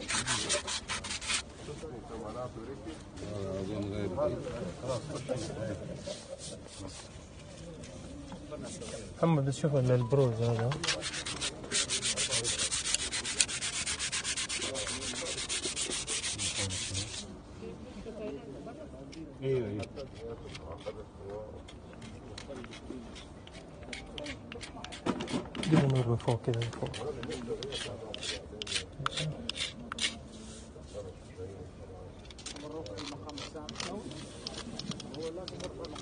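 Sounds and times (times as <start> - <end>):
hands rubbing a hard surface: 0.0 - 1.5, 10.1 - 17.3, 22.0 - 31.0
cloth rubbing on stone: 0.0 - 1.8, 10.1 - 17.3.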